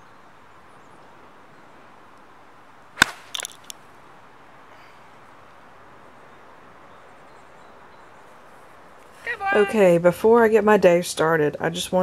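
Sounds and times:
golf club striking ball: 3.0 - 3.8.

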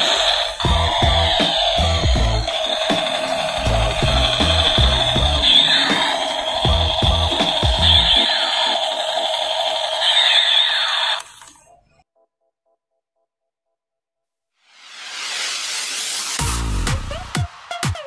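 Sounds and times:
electronic music with thumping beat: 0.6 - 8.3, 16.2 - 18.0.

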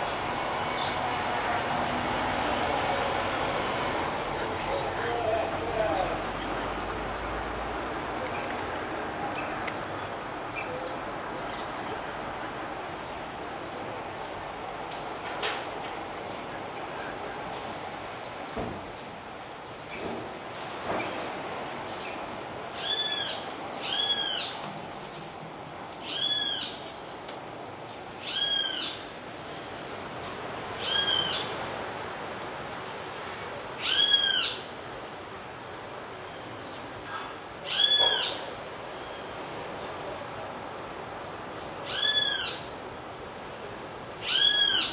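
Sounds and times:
birds giving alarm calls: 33.8 - 34.7, 37.7 - 38.5, 41.8 - 42.8, 44.0 - 44.9.

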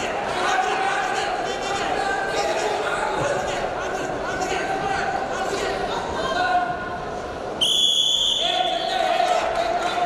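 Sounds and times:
referee's whistle blast: 7.6 - 8.7.

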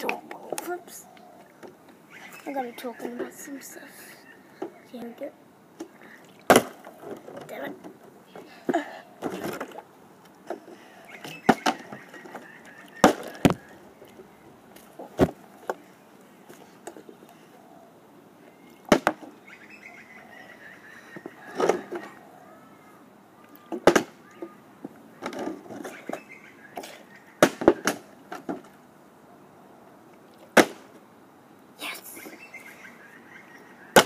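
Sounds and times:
plastic bottle thudding on ground: 18.9 - 19.3.

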